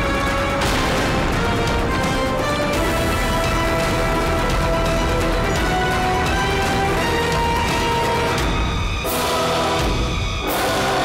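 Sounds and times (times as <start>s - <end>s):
dramatic score with choir voices: 0.0s - 11.0s.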